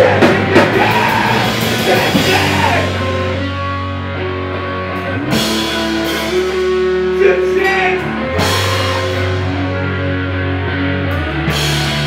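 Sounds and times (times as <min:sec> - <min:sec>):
drums: 0:00.0 - 0:12.0
electric guitar chords: 0:00.0 - 0:12.0.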